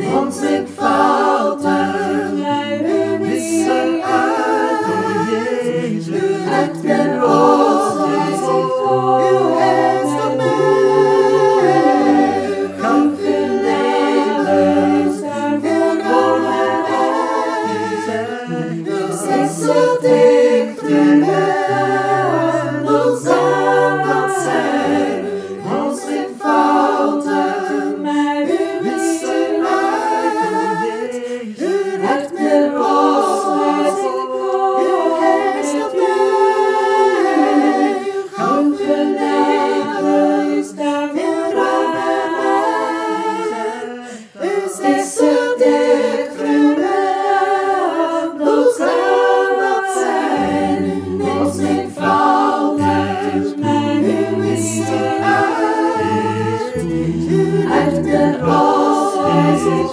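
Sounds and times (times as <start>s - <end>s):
a cappella choir singing chords: 0.0s - 59.9s.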